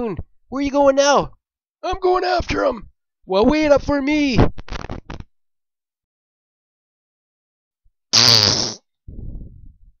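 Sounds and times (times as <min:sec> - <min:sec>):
comic fart sound: 0:04.6 - 0:05.3, 0:08.1 - 0:08.9.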